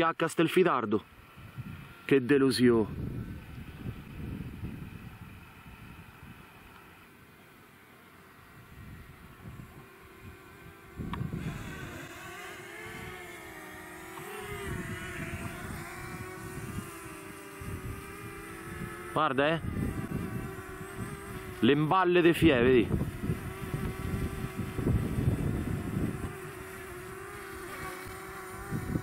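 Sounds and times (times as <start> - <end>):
drone propellers buzzing: 1.1 - 29.0
wind rumble on microphone: 1.4 - 2.0, 2.8 - 6.5, 8.6 - 12.1, 14.4 - 21.7, 22.4 - 29.0.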